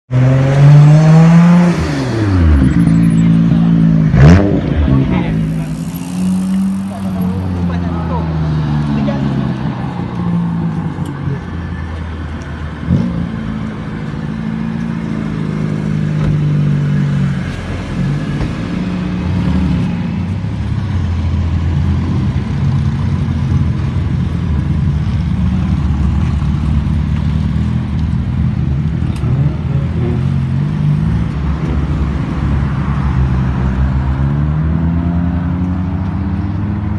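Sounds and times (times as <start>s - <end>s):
car engines revving past: 0.1s - 36.9s.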